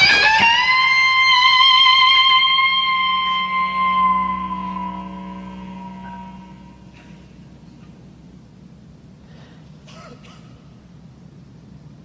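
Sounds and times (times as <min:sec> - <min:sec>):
electric guitar note ringing: 0:00.0 - 0:07.7.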